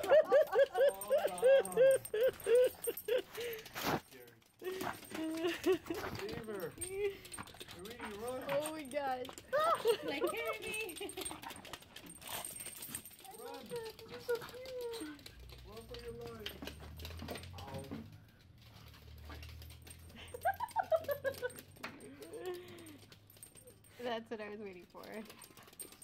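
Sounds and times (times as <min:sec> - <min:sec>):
dogs whining: 0:00.0 - 0:03.8
collar tags clinking: 0:00.0 - 0:26.0
dogs scuffling on hardwood floor: 0:02.5 - 0:20.2.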